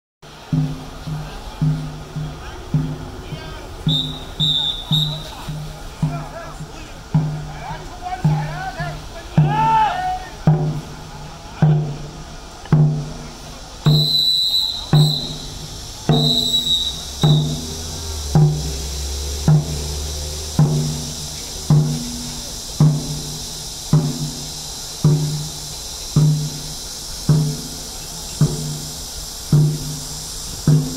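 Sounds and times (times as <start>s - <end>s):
drum beaten in slow rhythm: 0.2s - 30.9s.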